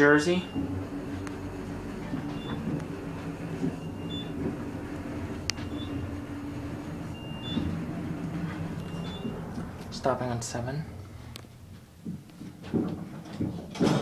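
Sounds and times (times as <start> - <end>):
elevator hum and rumble: 0.0 - 14.0.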